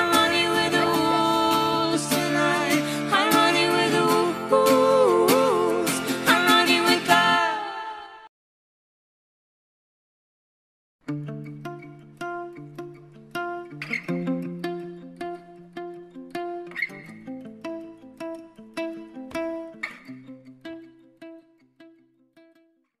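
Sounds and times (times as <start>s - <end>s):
plucked instrumental music: 0.0s - 7.5s, 11.0s - 22.9s.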